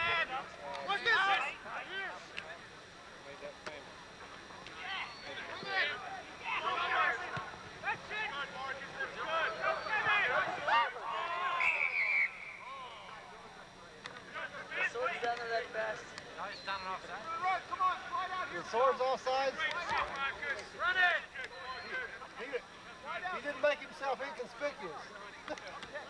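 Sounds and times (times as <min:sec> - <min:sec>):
distant shouting: 0:04.7 - 0:15.2
referee's whistle blast: 0:11.4 - 0:12.8.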